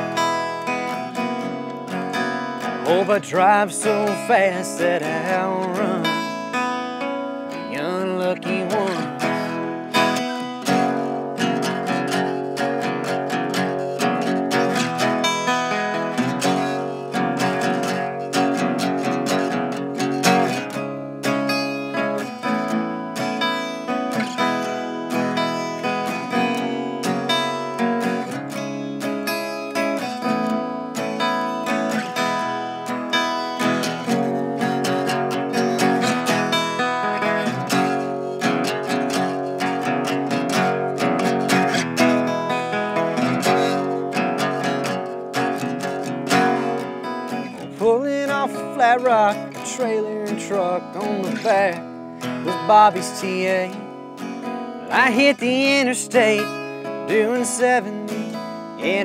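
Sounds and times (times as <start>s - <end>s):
acoustic guitar strumming chords: 0.0s - 59.0s.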